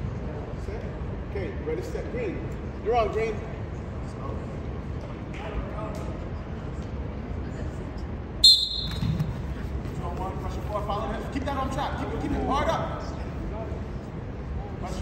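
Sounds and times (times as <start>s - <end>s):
referee's whistle blast: 8.4s - 9.3s.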